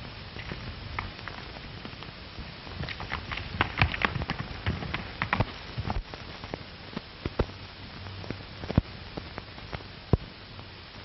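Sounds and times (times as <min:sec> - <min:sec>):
crackling clicks and pops: 0:00.0 - 0:10.4
steady hiss: 0:00.0 - 0:11.0.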